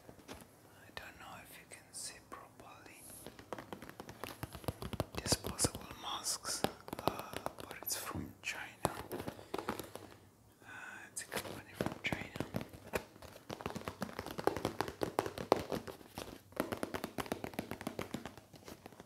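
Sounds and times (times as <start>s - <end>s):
soft whispering: 0.7s - 3.4s, 5.0s - 13.1s.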